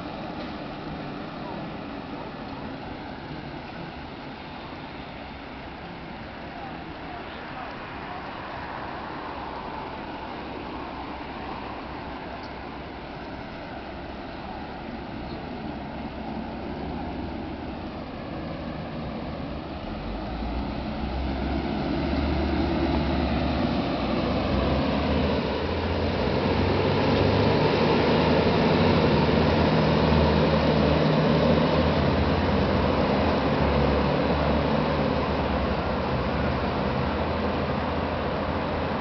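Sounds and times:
street traffic rumble: 0.0s - 39.0s.

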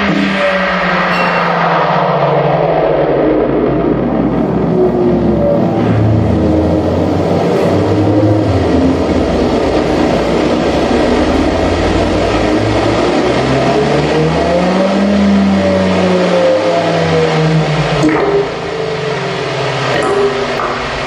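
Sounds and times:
dense noisy synthesizer texture: 0.0s - 21.0s
low droning tones: 0.0s - 21.0s
gliding low tone: 0.7s - 14.2s
slowly falling higher tone: 0.8s - 7.3s.

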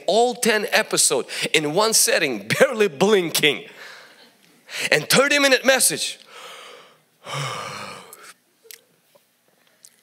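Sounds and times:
man breathing heavily: 6.3s - 8.4s.

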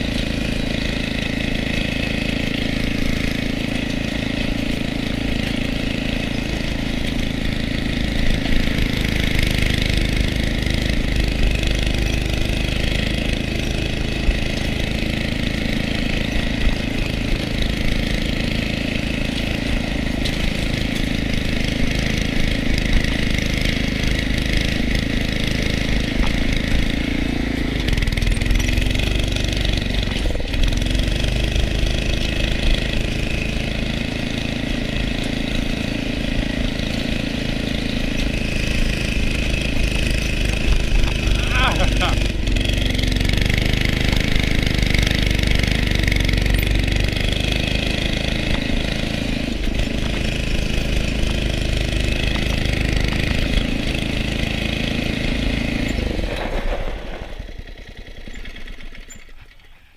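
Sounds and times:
go-kart engine running: 0.0s - 59.9s.

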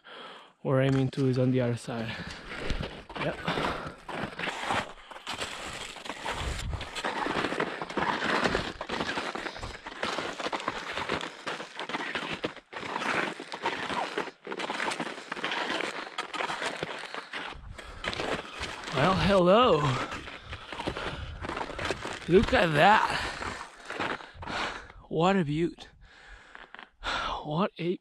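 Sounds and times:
skis scraping over snow: 1.9s - 24.6s.

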